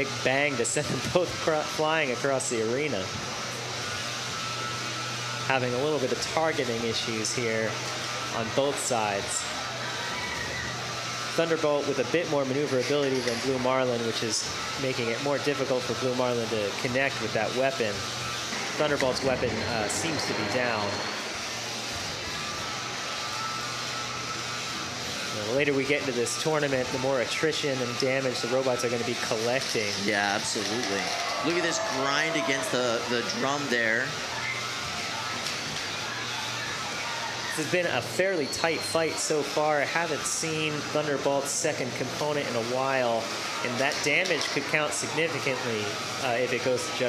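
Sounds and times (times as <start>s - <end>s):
combat robot weapons spinning: 2.0s - 47.0s
low hum: 18.1s - 25.0s.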